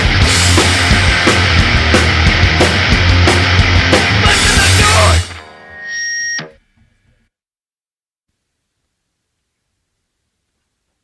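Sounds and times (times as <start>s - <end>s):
hardcore band guitars and drums: 0.0s - 6.5s
ringing guitar feedback tone: 0.2s - 7.2s.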